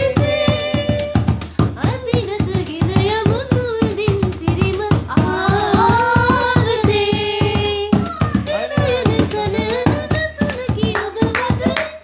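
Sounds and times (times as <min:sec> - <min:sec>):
hand drum beaten: 0:00.0 - 0:12.0
person singing: 0:00.0 - 0:12.0.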